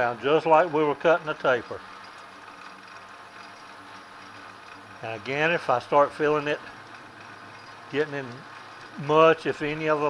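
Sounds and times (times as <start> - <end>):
knurling tool on metal: 0.0 - 10.0
metal lathe humming: 0.0 - 10.0.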